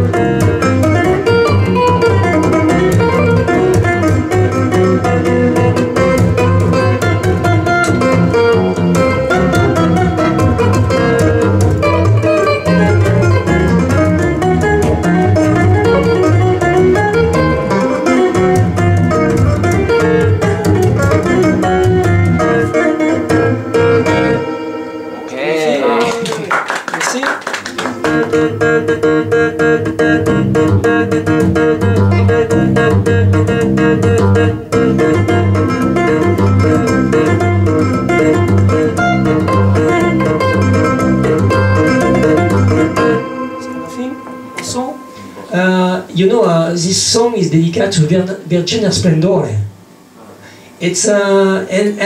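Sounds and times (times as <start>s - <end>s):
tapped stick instrument melody: 38.1s - 46.0s.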